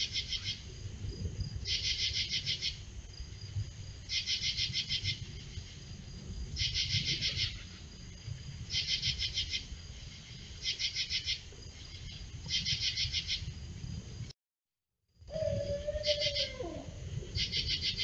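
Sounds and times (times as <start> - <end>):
insects pulsing calls: 0.0 - 14.0, 15.2 - 18.0.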